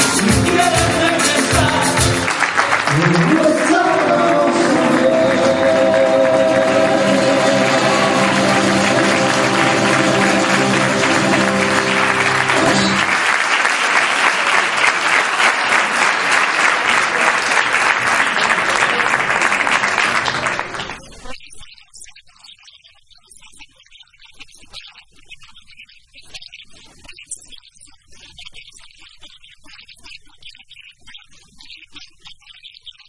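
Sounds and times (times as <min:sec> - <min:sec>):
flamenco-style music: 0:00.0 - 0:13.2
audience applauding: 0:00.0 - 0:21.2.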